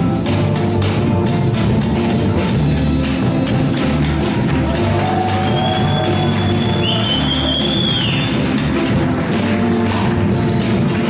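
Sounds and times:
bass: 0.0s - 11.0s
congas: 0.0s - 11.0s
drum kit: 0.0s - 11.0s.

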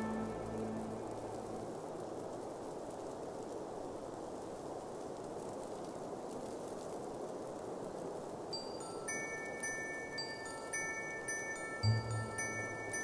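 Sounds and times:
tinkling chime-like bell notes: 0.0s - 1.0s, 8.6s - 13.0s
soft rushing wind: 0.0s - 13.0s.

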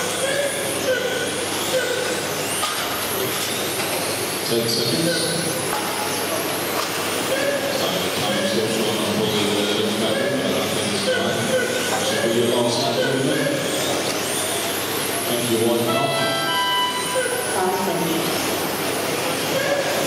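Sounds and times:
electric rc cars running: 0.0s - 15.9s
echoing indistinct voices: 0.0s - 20.0s
steady high tones: 7.9s - 19.8s.

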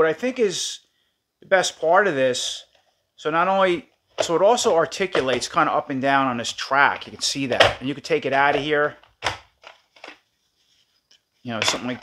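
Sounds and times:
plastic toy parts clacking: 8.5s - 10.2s.

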